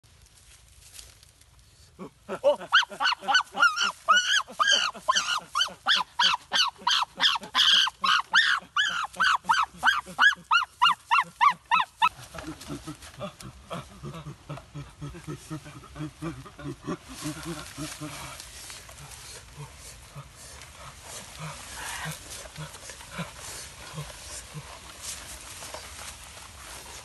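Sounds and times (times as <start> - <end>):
animal high rising calls: 2.5 - 13.0.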